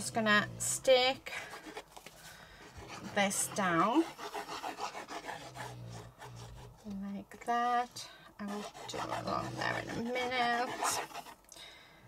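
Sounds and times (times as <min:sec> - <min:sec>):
low steady hum: 0:00.0 - 0:12.0
glue bottle tip scraping cardboard: 0:08.4 - 0:11.4.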